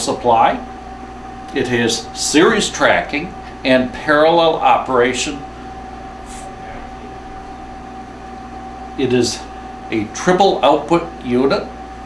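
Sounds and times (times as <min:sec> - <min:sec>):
background hum and hiss: 0:00.0 - 0:12.0
thin constant whine: 0:00.0 - 0:12.0.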